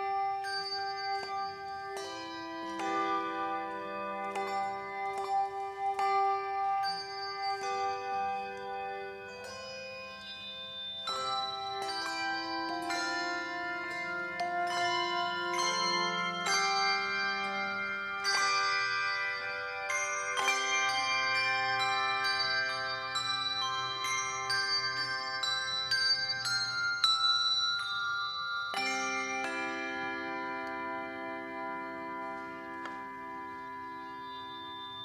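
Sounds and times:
handbell choir playing: 0.0 - 35.0.

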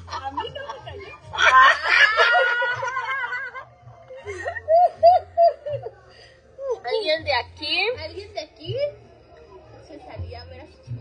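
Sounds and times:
women laughing: 0.1 - 6.0.

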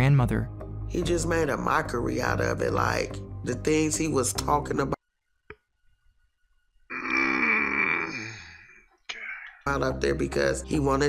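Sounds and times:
man's raspy groan: 6.9 - 8.7.

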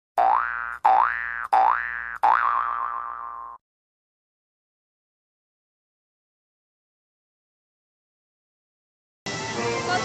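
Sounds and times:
cartoon boing sound effect: 0.2 - 3.6.

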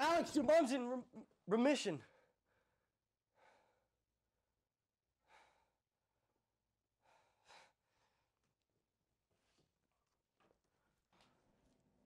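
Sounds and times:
man breathing faintly: 2.0 - 4.0, 5.2 - 8.6.

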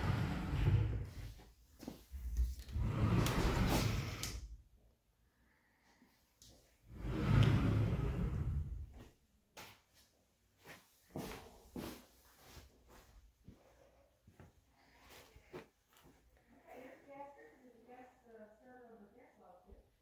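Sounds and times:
closet door closing rumble: 0.0 - 1.3, 2.4 - 4.4, 7.0 - 9.0
soft footsteps: 0.1 - 3.8, 7.3 - 16.4.

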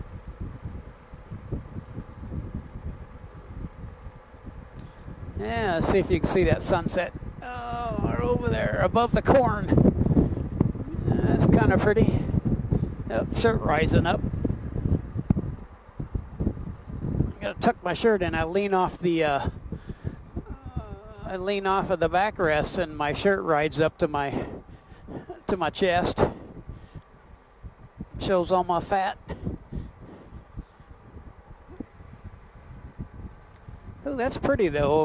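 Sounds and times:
faint engine running: 0.0 - 35.0
wind buffeting microphone: 0.0 - 35.0.

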